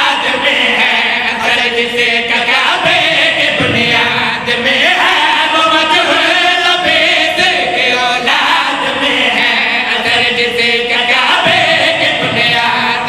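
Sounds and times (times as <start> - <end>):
men chanting together: 0.0 - 13.0.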